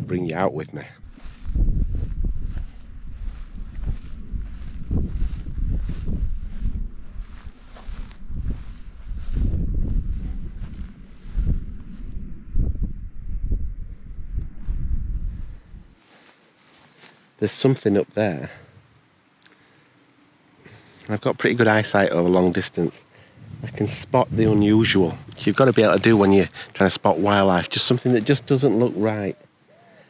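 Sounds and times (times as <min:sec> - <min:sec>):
gusty wind buffeting microphone: 0:01.0 - 0:16.0, 0:23.2 - 0:27.2.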